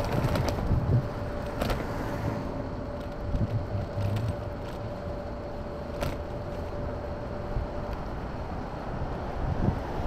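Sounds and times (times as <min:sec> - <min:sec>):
faint motor whine: 0:00.0 - 0:10.0
scooter road and wind noise: 0:00.0 - 0:10.0.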